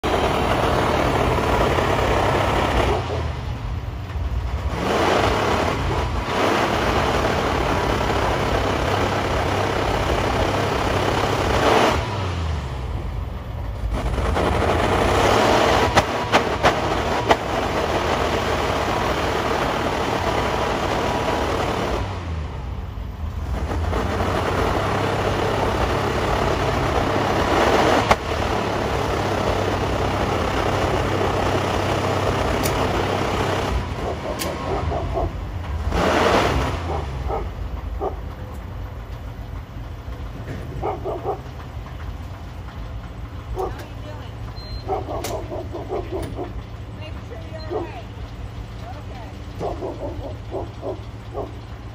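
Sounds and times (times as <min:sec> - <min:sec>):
motorhome engine idling rough: 0:00.0 - 0:36.0, 0:36.6 - 0:51.9.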